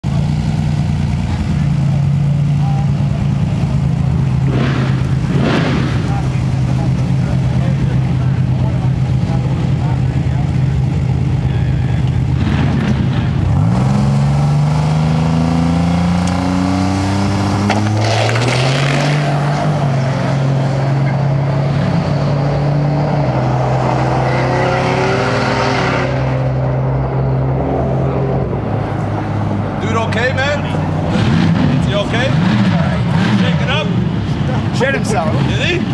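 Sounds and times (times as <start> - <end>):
drag car engine revving and launching: 3.5 - 35.9.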